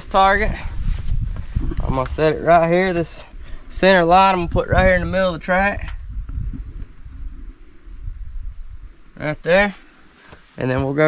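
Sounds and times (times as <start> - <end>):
low rumble: 0.0 - 9.4
insects chirping: 0.0 - 11.0.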